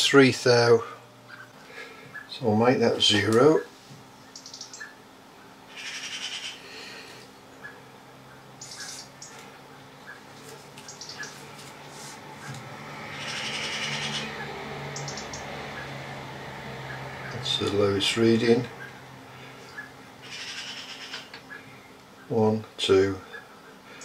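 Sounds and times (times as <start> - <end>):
low steady hum: 0.0 - 24.0.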